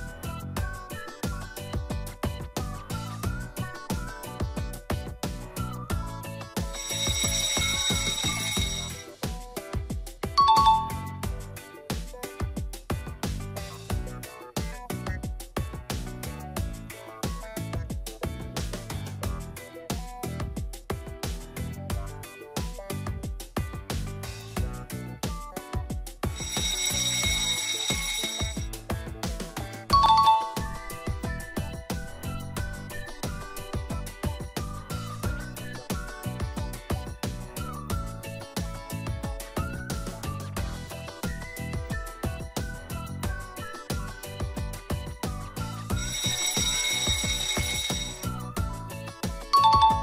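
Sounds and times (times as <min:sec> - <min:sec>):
background music with steady beat: 0:00.0 - 0:50.0
alarm clock ringing: 0:06.5 - 0:09.1, 0:10.4 - 0:11.2, 0:26.3 - 0:28.8, 0:30.0 - 0:33.3, 0:45.9 - 0:48.5, 0:49.6 - 0:50.0.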